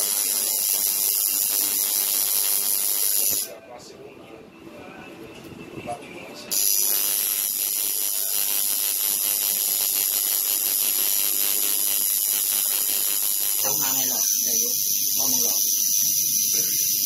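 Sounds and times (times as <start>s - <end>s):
tattoo machine buzzing: 0.0s - 3.6s, 6.5s - 17.0s.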